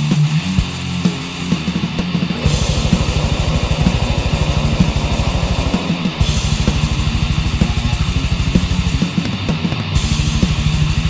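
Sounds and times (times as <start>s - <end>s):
rapid kick drum strokes: 2.2s - 8.2s
distorted metal guitars: 2.3s - 8.3s.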